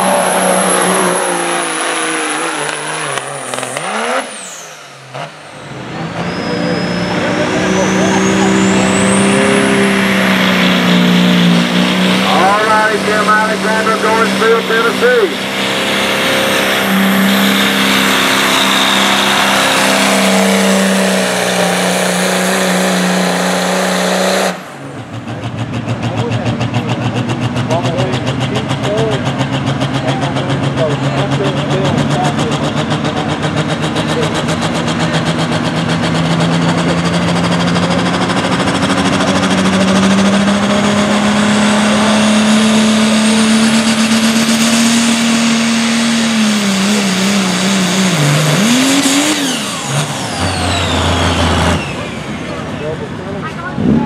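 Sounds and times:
diesel truck engines at full throttle: 0.0s - 54.0s.

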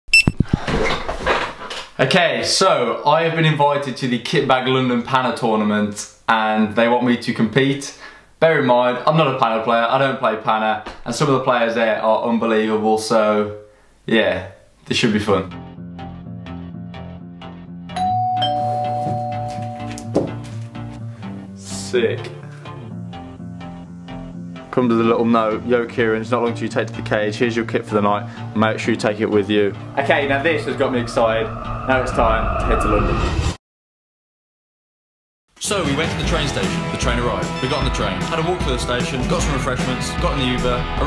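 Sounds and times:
background music: 15.2s - 31.9s, 35.6s - 41.0s
high ding: 18.0s - 20.2s
two-tone doorbell chime: 18.0s - 20.4s.

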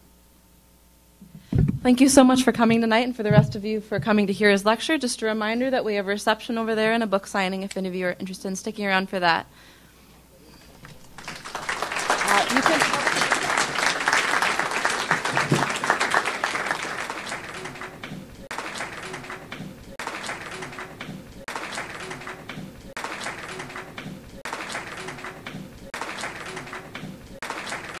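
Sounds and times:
audience applauding: 10.8s - 28.0s
crowd murmur: 11.8s - 28.0s.

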